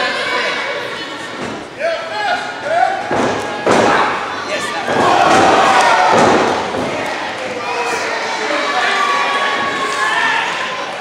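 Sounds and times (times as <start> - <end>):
people shouting: 1.8 - 11.0.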